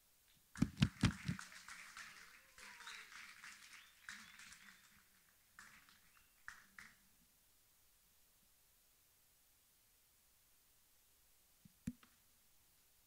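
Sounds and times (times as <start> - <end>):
audience applause: 0.6 - 7.0.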